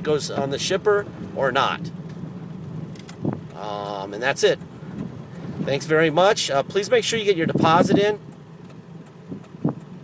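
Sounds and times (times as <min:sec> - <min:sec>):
diesel engine running low revs: 0:00.0 - 0:10.0.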